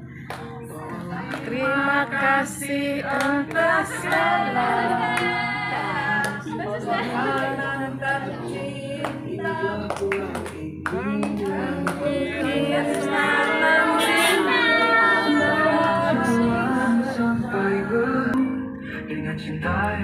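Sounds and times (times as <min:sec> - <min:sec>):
hand clapping: 0:00.2 - 0:01.6, 0:03.1 - 0:04.4, 0:06.2 - 0:06.5, 0:09.0 - 0:12.1
women singing unaccompanied: 0:01.0 - 0:18.4.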